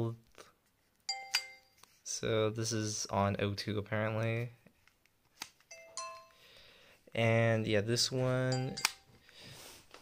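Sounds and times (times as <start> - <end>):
phone electronic chime: 1.1 - 1.8, 5.7 - 6.4, 8.5 - 9.2.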